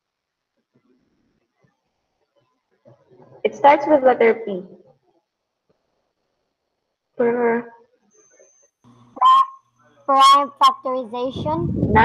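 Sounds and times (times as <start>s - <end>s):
child speaking over video call: 3.4s - 4.8s, 7.2s - 7.8s, 10.1s - 12.0s.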